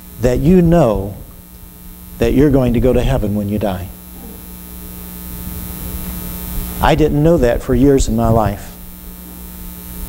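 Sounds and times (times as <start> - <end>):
electrical mains hum: 0.0 - 10.0
man speaking: 2.3 - 4.4.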